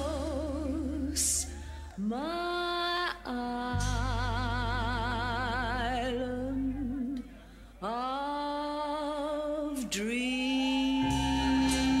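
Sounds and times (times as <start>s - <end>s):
low bass accompaniment: 3.3s - 7.4s, 11.0s - 12.0s
person singing long note with vibrato: 9.2s - 12.0s.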